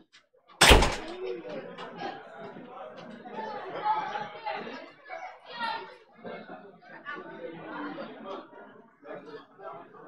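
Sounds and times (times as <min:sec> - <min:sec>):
chatter of many people: 0:00.0 - 0:10.0
loud bang: 0:00.6 - 0:01.2.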